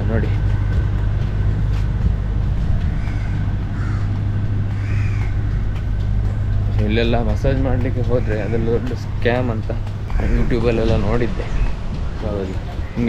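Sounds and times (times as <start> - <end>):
steady low rumble: 0.0 - 13.0
crow cawing: 2.8 - 11.8.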